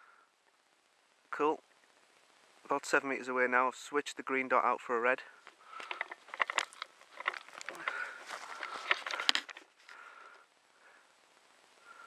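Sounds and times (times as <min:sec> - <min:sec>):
dry leaves crunching underfoot: 0:05.8 - 0:09.7.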